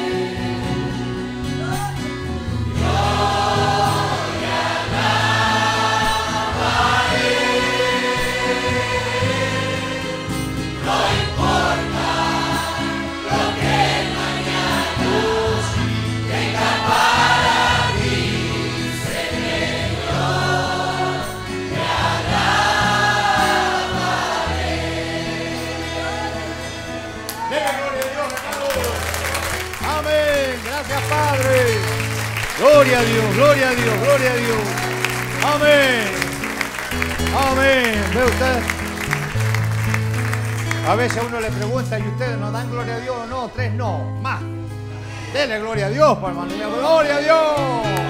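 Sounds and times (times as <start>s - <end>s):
congregation singing: 0.0s - 41.5s, 46.6s - 48.0s
instrumental backing with bass: 0.0s - 48.0s.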